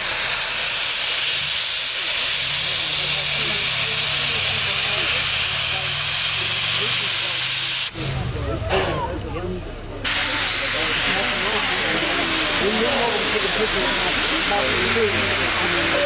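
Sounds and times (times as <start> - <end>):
crowd voices: 0.0 - 16.0
locomotive steam hissing: 0.0 - 16.0.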